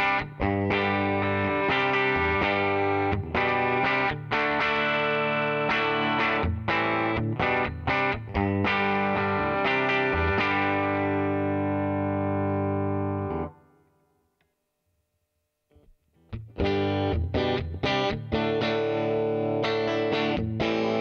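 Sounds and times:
electric guitar strumming chords: 0.0 - 13.7, 16.2 - 21.0.

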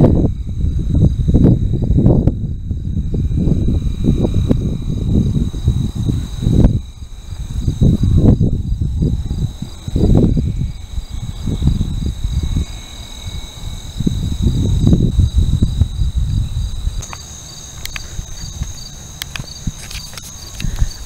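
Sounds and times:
insects trilling: 0.0 - 21.0
wind buffeting microphone: 0.0 - 21.0.

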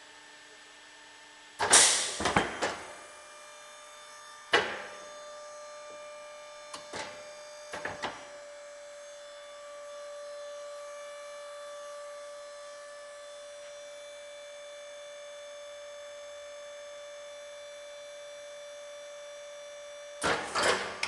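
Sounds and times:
machine electric hum: 0.0 - 21.0.

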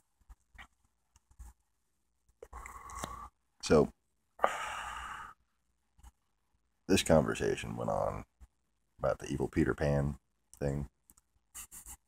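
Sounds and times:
man sighing: 4.4 - 5.3.

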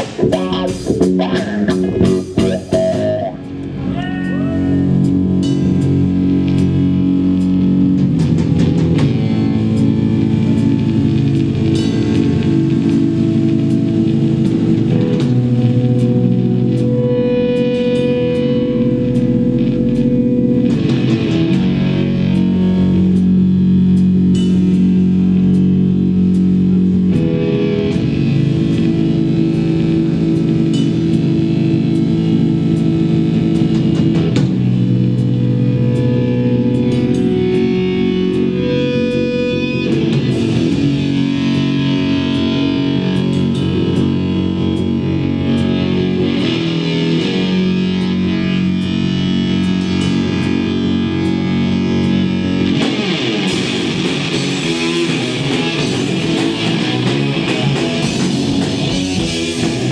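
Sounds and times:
drum kit and cymbals: 0.0 - 59.9
electric bass: 0.0 - 59.9
electric guitar chords: 0.0 - 59.9
live rock band: 0.0 - 59.9
drum and cymbal hits: 4.9 - 16.9, 52.0 - 59.9.

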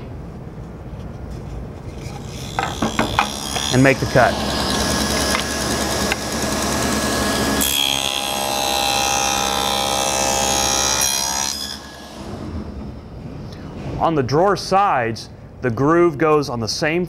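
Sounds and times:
table saw cutting wood: 1.9 - 12.7.

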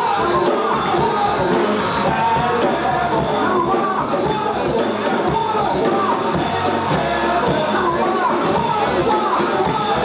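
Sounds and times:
man singing into a microphone: 0.0 - 6.3
live rock band playing: 0.0 - 10.0.

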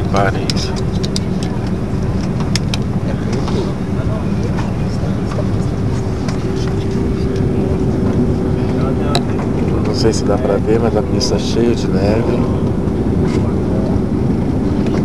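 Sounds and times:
constant hum: 0.0 - 15.0
rumble of engines and airflow: 0.0 - 15.0.

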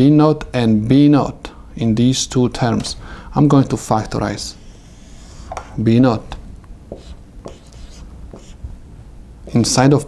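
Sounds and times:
marker writing on whiteboard: 6.9 - 8.6.

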